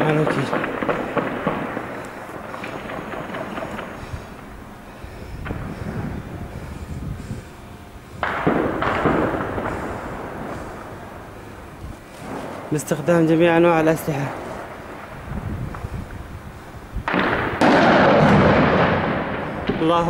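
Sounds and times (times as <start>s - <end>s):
gunshots: 0.0s - 4.5s, 8.2s - 11.0s, 17.1s - 20.0s
loud explosion blast: 0.0s - 7.3s, 8.2s - 11.1s, 13.5s - 20.0s
continuous rumble: 0.0s - 20.0s.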